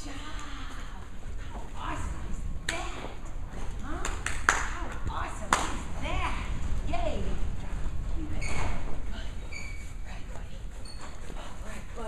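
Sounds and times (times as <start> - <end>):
indistinct voices in large room: 0.0 - 12.0.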